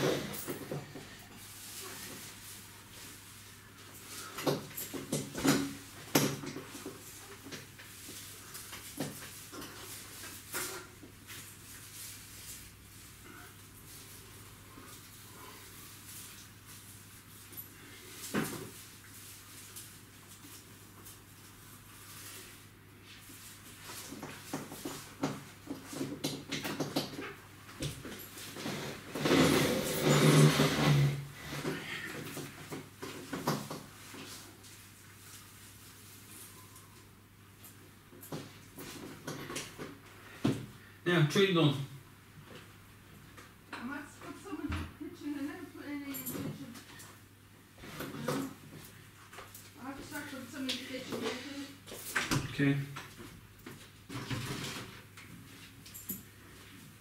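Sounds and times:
tinsel garland rustling: 0.1s - 26.2s, 27.3s - 39.2s.

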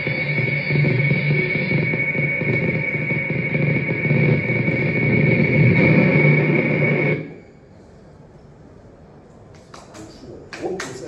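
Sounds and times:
low rumbling drone: 0.0s - 7.8s
high sustained whine: 0.0s - 9.2s.

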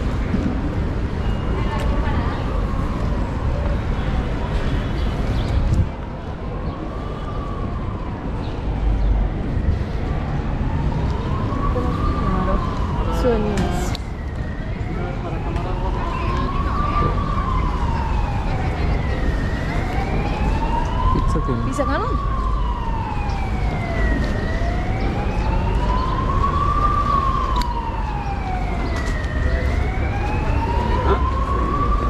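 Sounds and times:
emergency siren wailing: 0.0s - 32.0s
low city street rumble: 0.0s - 32.0s.

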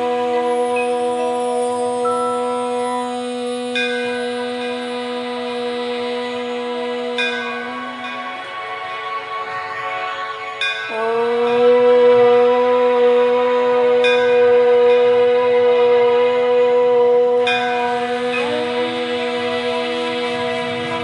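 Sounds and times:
soft background music: 0.0s - 16.0s
woman chanting om: 0.0s - 21.0s
chime struck: 2.0s - 3.2s.

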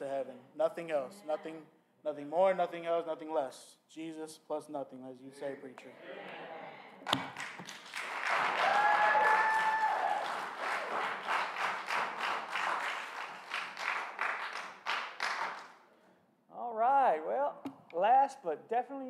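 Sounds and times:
congregation applauding: 7.1s - 15.8s.

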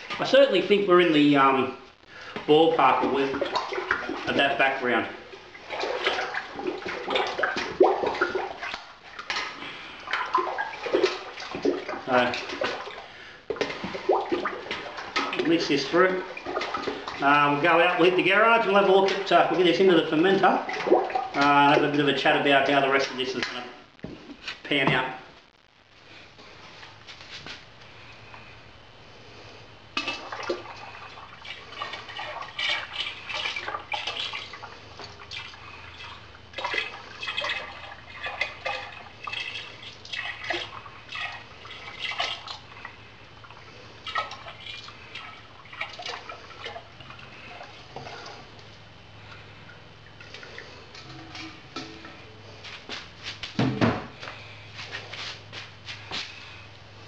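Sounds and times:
liquid splashing and dripping: 2.3s - 18.0s, 20.4s - 22.0s, 30.0s - 53.1s.

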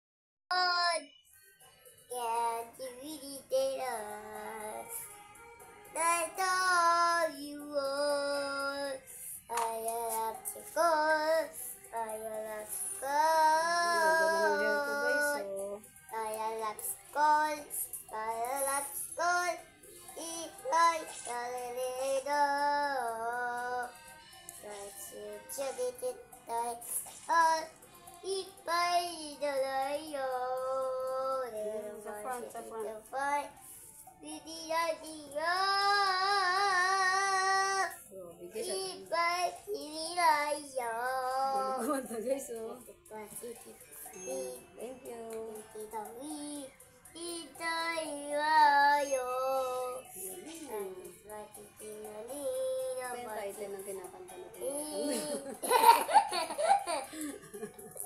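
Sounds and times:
young child singing: 0.5s - 1.2s, 2.1s - 5.2s, 5.8s - 24.0s, 24.6s - 33.6s, 34.2s - 42.2s, 42.8s - 57.2s
young child laughing: 55.0s - 58.0s.

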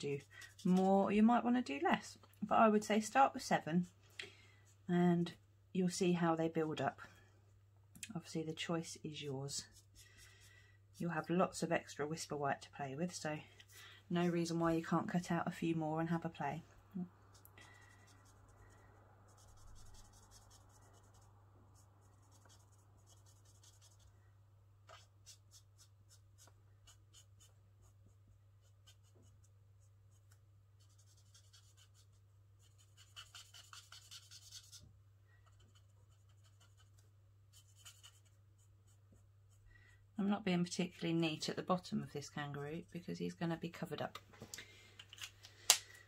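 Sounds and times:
marker scratching on cardstock: 18.0s - 21.2s, 22.2s - 24.0s, 24.9s - 29.5s, 30.1s - 34.8s, 35.5s - 39.6s.

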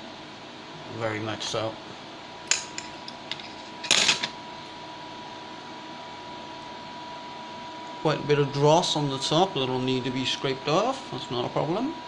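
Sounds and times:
faint hum with high tone: 0.0s - 12.0s.

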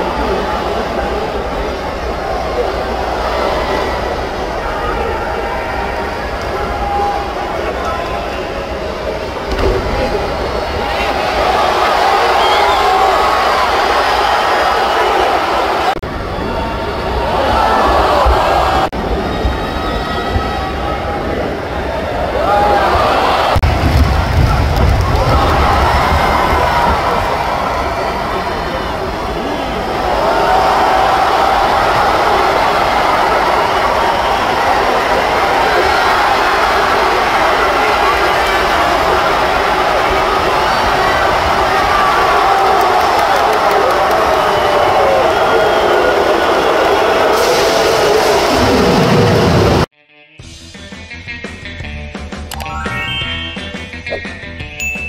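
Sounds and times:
crowd shouting and cheering: 0.0s - 49.9s, 52.4s - 55.0s
arena music: 49.5s - 55.0s
outro music: 50.4s - 55.0s.

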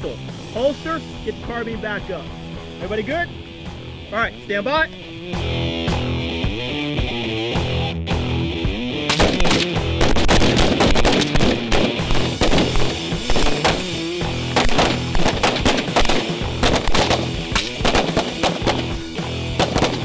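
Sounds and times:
background music: 0.0s - 20.0s
rifle and pistol gunfire: 9.0s - 20.0s.

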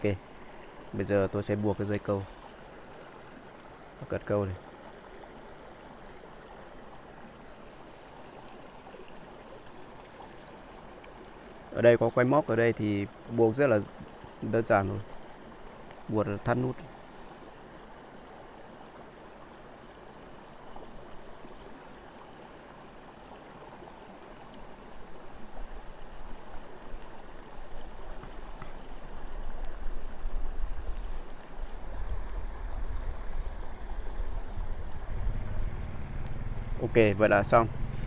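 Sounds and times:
stream water running: 0.0s - 38.0s.

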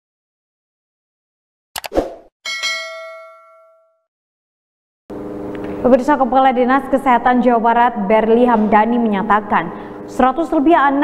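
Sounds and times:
bright bell-like ding: 2.5s - 4.1s.

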